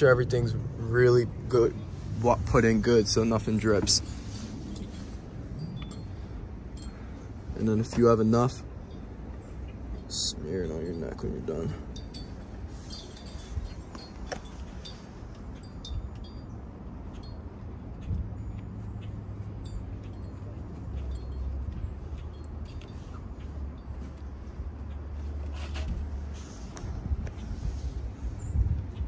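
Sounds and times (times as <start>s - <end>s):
low steady rumble: 0.0s - 29.0s
high-pitched tinkling and clinking: 3.0s - 9.4s, 10.0s - 25.4s.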